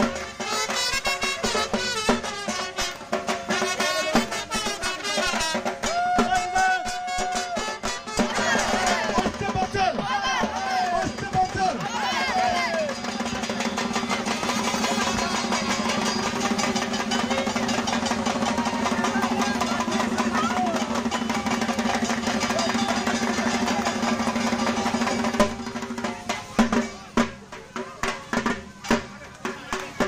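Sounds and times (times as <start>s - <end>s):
crowd voices: 0.0s - 30.0s
drums beaten in fast beat: 0.0s - 30.0s.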